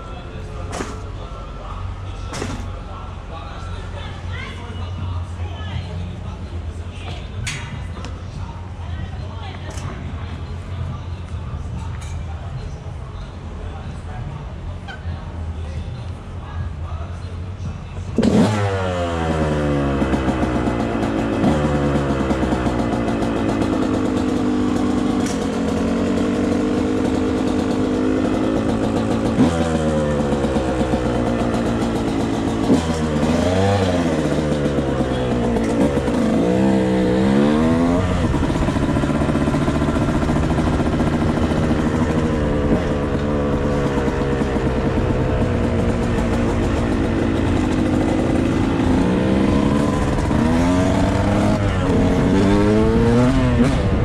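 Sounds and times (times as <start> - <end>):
dirt bike engine revving: 18.2 - 54.0.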